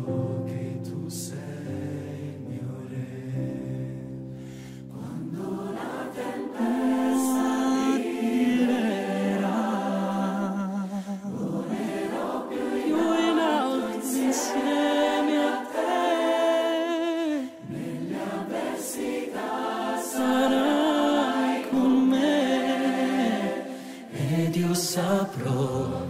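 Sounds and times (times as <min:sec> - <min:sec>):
choir singing: 0:00.0 - 0:04.2, 0:04.9 - 0:26.0
soft sustained accompaniment chord: 0:00.0 - 0:08.0.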